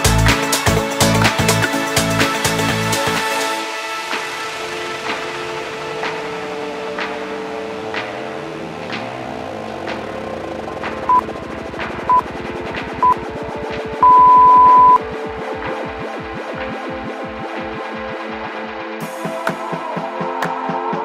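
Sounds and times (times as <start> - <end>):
electronic workout music: 0.0 - 21.0
timer beeps: 14.0 - 15.0.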